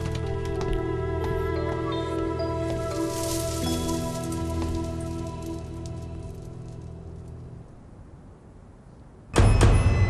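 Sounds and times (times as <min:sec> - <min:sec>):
rain-like patter of ticks: 0:02.6 - 0:07.5.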